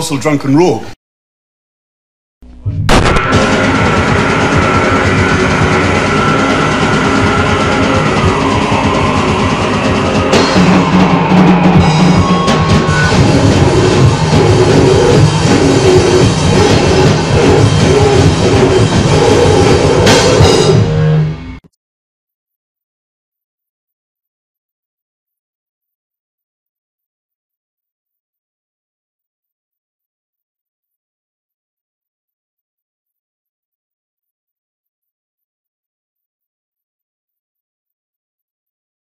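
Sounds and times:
grindcore band with drums: 0:02.9 - 0:21.0.

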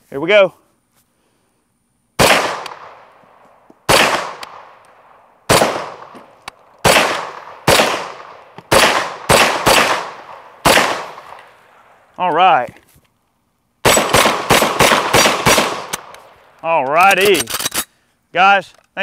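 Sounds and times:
rifle shots with ringing echo: 0:02.2 - 0:03.2, 0:03.8 - 0:11.6, 0:13.8 - 0:16.4.

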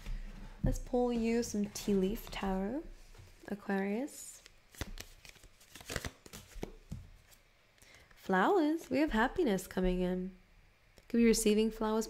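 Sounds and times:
cards clicking and sliding: 0:04.7 - 0:07.4.

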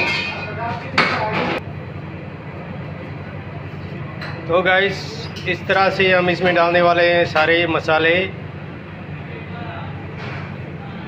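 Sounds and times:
kitchen background rumble: 0:00.0 - 0:11.0.

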